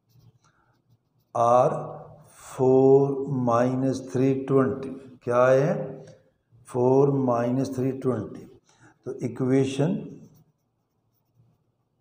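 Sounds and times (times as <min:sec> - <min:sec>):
pen scratching on paper: 0:00.0 - 0:02.0, 0:10.1 - 0:12.0
man speaking: 0:01.4 - 0:06.1, 0:06.7 - 0:10.3.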